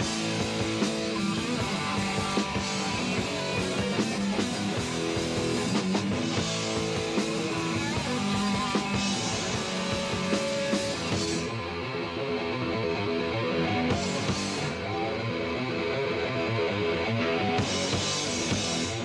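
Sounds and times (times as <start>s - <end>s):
distorted electric guitars: 0.0s - 19.0s
drums: 0.0s - 19.0s.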